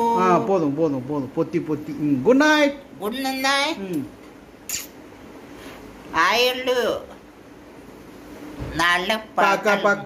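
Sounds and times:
short soft hiss: 0:04.6 - 0:05.9.

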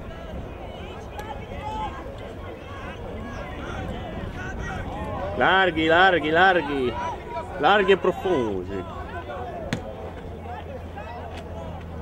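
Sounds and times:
distant babble of voices: 0:00.0 - 0:12.0.

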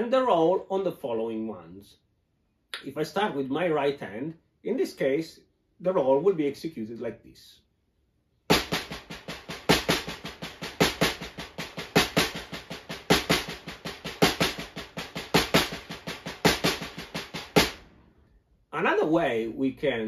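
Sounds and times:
snare drum roll: 0:08.5 - 0:17.9.

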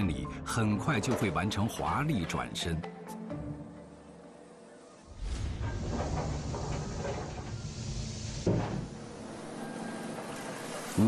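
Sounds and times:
sliding machine door running: 0:05.1 - 0:11.0
door shutting clunk: 0:05.3 - 0:11.0.

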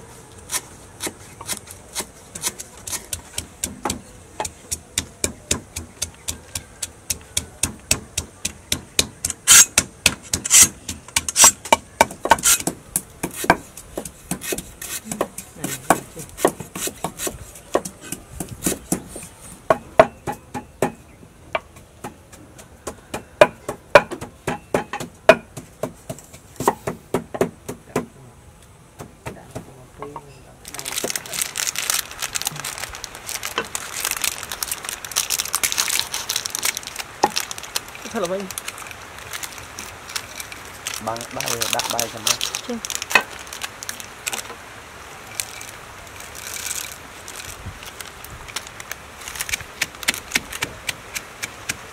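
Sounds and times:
cleaver chopping on wooden board: 0:00.5 - 0:21.0, 0:21.6 - 0:28.1
pestle pounding in wooden mortar: 0:00.5 - 0:21.0, 0:21.6 - 0:28.1, 0:49.5 - 0:51.9
plastic bag crinkling: 0:30.6 - 0:51.5.

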